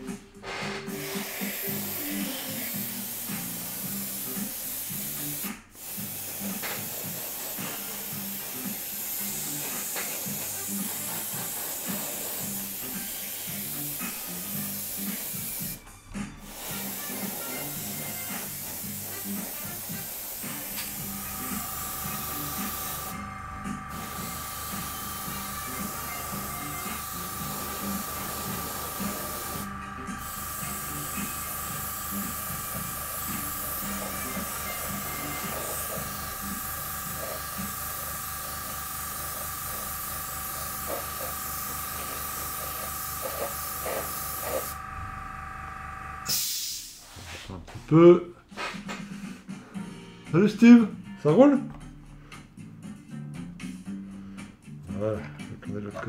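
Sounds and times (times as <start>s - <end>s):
airbrush spraying hiss: 0.9s - 15.8s, 16.4s - 44.8s, 46.2s - 47.2s
thin whine: 19.2s - 46.5s.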